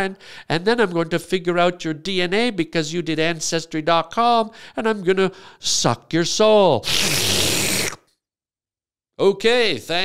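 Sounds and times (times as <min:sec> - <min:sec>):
man making breathy sucking noise: 0:06.8 - 0:08.1.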